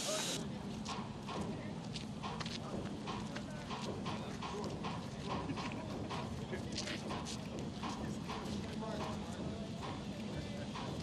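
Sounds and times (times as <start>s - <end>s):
low steady train hum: 0.0s - 11.0s
rhythmic clacking of train on rails: 0.0s - 11.0s.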